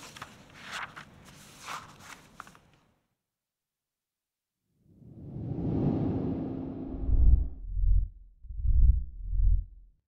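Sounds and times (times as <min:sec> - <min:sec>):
deep bass pulses: 0:05.9 - 0:09.9.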